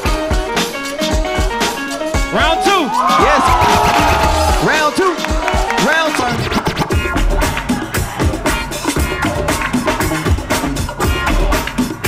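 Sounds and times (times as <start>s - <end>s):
hip-hop break beat: 0.0s - 12.0s
record scratching on turntable: 6.1s - 7.8s.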